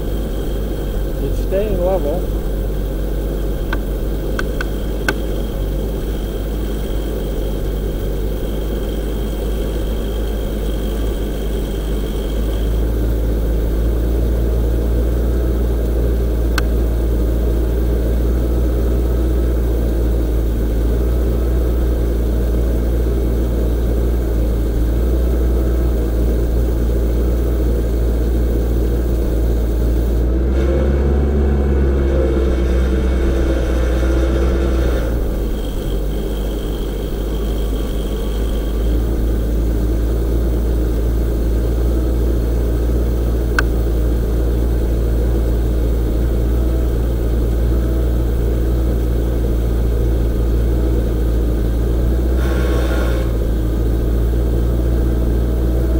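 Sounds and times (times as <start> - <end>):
boom lift engine running: 0.0 - 55.9.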